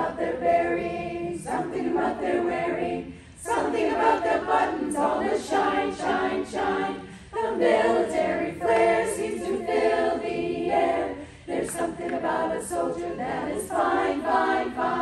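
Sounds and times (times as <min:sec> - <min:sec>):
women's choir singing a cappella: 0:00.0 - 0:15.0.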